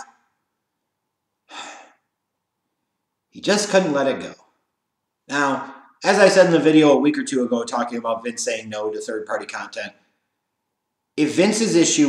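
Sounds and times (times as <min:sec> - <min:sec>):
man breathing: 0:01.4 - 0:02.1.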